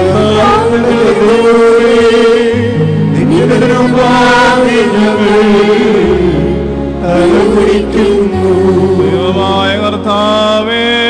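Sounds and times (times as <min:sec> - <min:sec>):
liturgical chant: 0:00.0 - 0:11.0.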